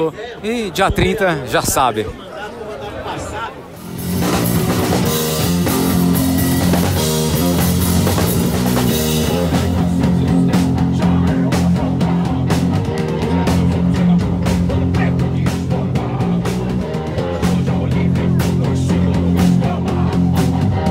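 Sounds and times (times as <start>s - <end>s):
drum and cymbal hits: 3.8s - 20.9s
heavy rock music: 3.8s - 20.9s.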